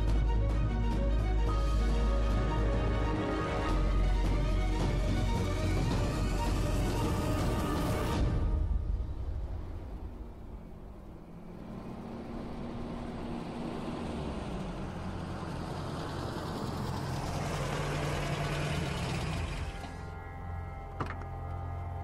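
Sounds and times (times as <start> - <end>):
car engine approaching and idling: 0.0 - 8.2, 8.8 - 22.0.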